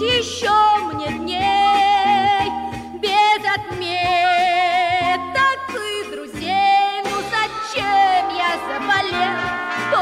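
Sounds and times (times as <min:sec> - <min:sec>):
children's pop song with band: 0:00.0 - 0:10.0.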